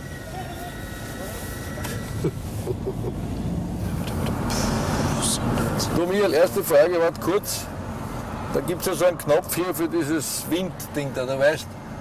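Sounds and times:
thin steady whine: 0.0s - 12.0s.

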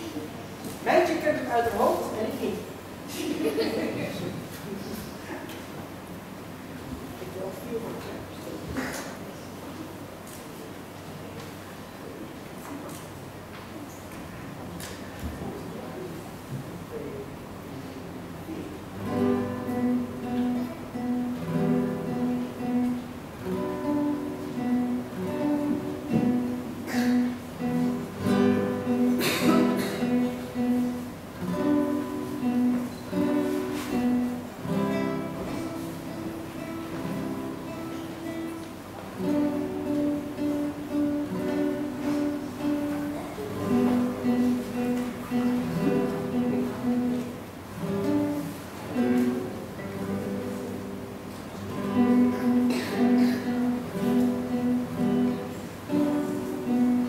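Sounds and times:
nylon-string guitar duet: 0.0s - 57.0s.

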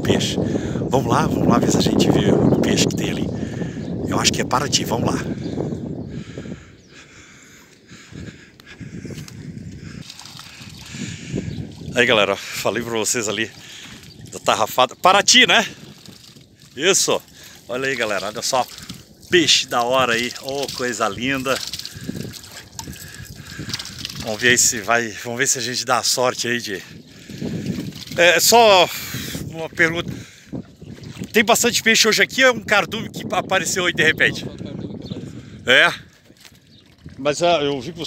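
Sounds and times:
shallow water trickling and splashing: 8.9s - 32.2s, 36.0s - 38.0s.

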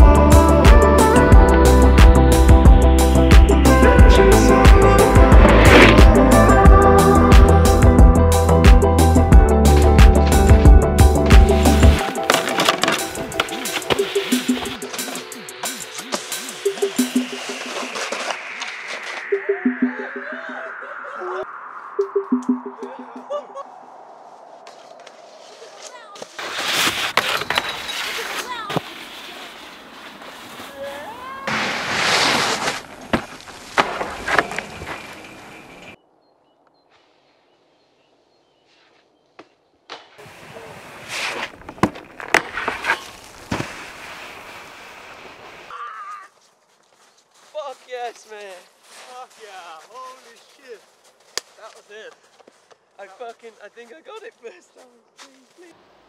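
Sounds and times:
young men's voices: 3.6s - 5.4s
snowboard scraping on snow and metal: 4.9s - 6.7s, 9.6s - 19.3s, 24.7s - 35.9s, 40.2s - 45.7s
men laughing: 19.5s - 21.6s, 22.7s - 23.9s.

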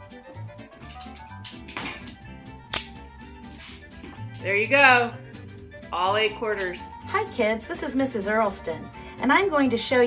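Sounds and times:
background music: 0.0s - 10.0s
coins caught in hand clack: 0.9s - 4.0s, 6.5s - 6.9s.

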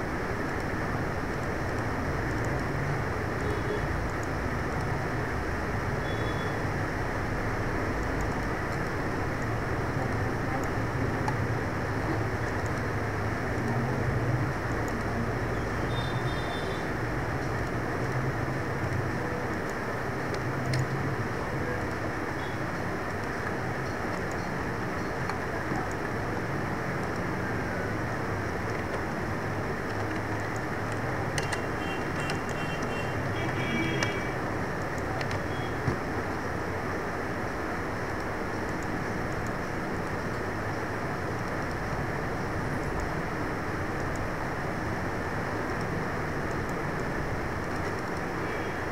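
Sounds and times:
faint clicks: 0.5s - 5.0s, 7.8s - 11.5s, 12.1s - 14.0s, 18.8s - 21.0s, 28.5s - 36.4s, 38.0s - 44.4s, 45.6s - 48.9s.

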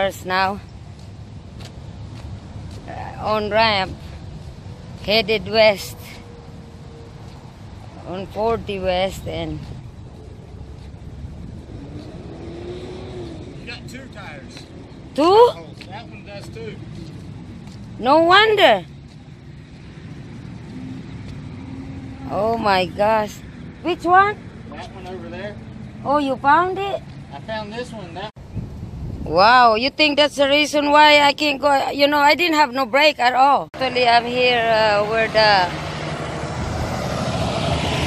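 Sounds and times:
diesel engine rumbling: 0.0s - 29.7s, 32.1s - 38.0s.

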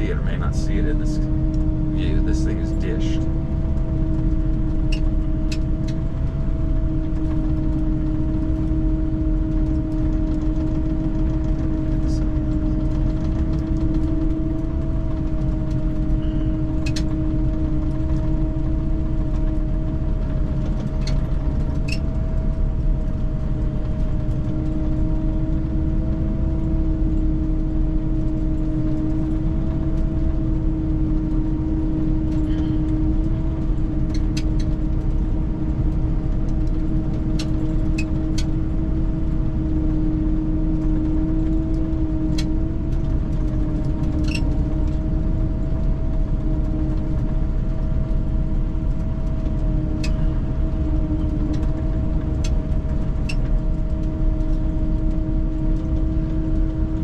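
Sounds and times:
tracked vehicle engine droning: 0.0s - 57.0s.

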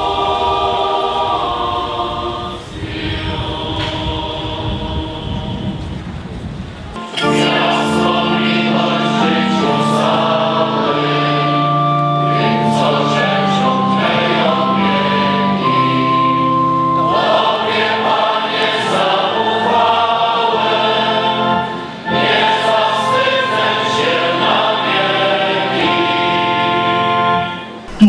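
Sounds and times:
choir singing a hymn: 0.0s - 6.2s, 7.0s - 28.0s.

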